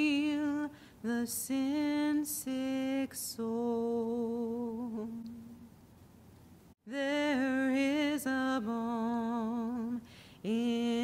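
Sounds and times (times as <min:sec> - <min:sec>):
woman singing unaccompanied: 0:00.0 - 0:05.7, 0:06.8 - 0:11.0
quick breath: 0:10.0 - 0:10.4.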